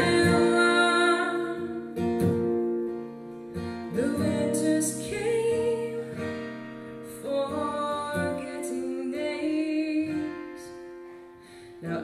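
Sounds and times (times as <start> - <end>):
woman singing: 0.0 - 2.3, 3.6 - 11.1, 11.7 - 12.0
acoustic guitar strumming: 0.0 - 12.0
mandolin: 0.0 - 12.0.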